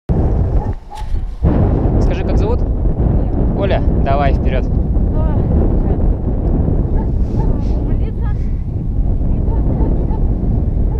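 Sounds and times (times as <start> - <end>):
wind buffeting microphone: 0.1 - 10.9.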